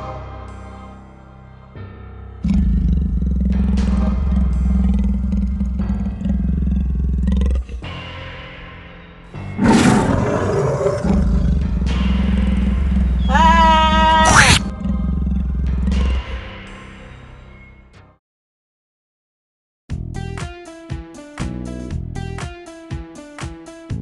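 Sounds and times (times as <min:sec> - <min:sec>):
ominous film music with drone: 0:00.0 - 0:18.1
monster roar: 0:02.4 - 0:08.0, 0:09.6 - 0:16.5.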